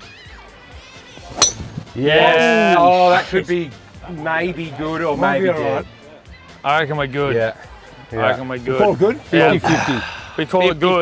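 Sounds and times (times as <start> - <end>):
faint background music: 0.0 - 11.0
golf club striking ball: 1.3 - 1.8.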